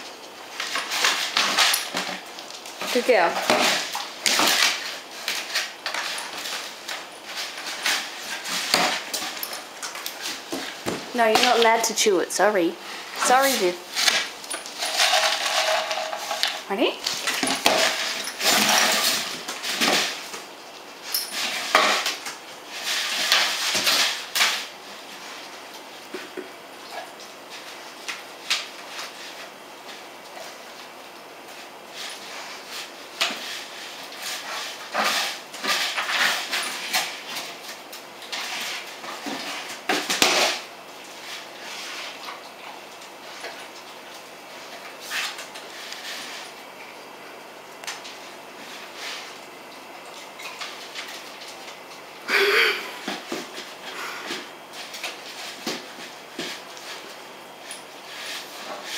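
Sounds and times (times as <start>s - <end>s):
tube toy rattling on floor: 14.7s - 16.8s.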